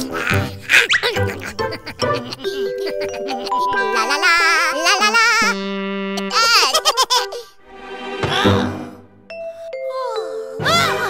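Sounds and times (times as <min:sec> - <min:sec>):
cartoon music: 0:00.0 - 0:07.5
high-pitched cartoon giggling: 0:00.0 - 0:07.5.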